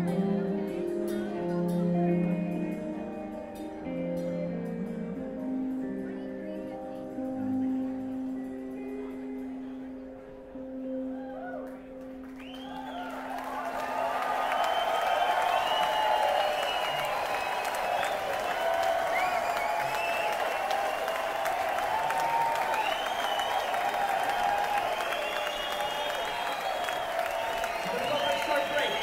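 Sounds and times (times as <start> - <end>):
audience applauding and cheering: 11.1 - 29.0
whoops and whistles: 12.4 - 29.0.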